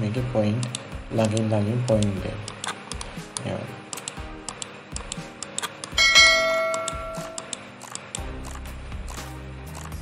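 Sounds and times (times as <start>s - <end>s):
background music with ticking beat: 0.0s - 10.0s
bell-like notification chime: 6.0s - 7.4s.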